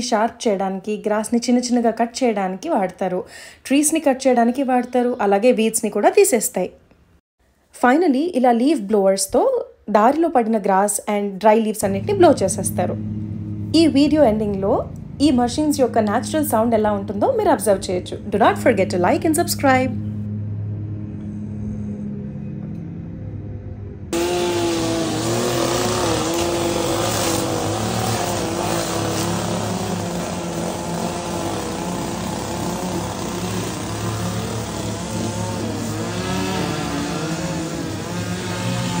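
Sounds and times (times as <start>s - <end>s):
small gasoline engine revving: 11.8s - 20.2s, 24.1s - 39.0s
distant lawn mower engine: 11.8s - 23.0s, 24.1s - 39.0s.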